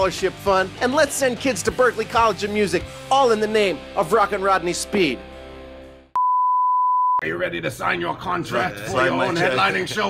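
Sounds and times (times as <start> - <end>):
music: 0.0 - 6.2
electronic bleep tone: 6.2 - 7.2.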